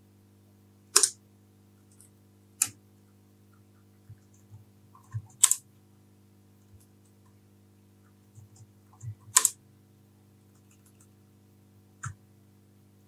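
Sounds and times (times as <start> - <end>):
faint steady hum: 0.0 - 13.0
typing on computer keyboard: 4.1 - 5.6, 8.4 - 9.6, 10.6 - 11.1.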